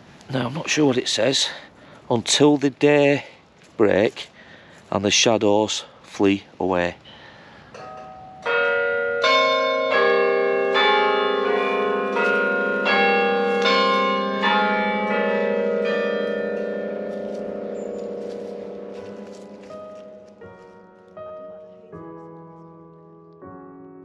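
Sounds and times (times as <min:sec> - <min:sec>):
struck bell-like notes ringing: 0:07.8 - 0:20.4.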